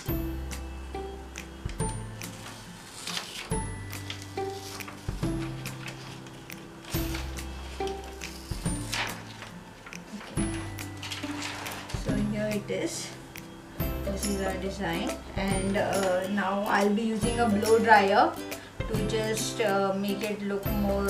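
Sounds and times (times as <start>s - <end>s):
background music: 0.0s - 21.0s
plastic sheet crinkling: 2.3s - 12.3s.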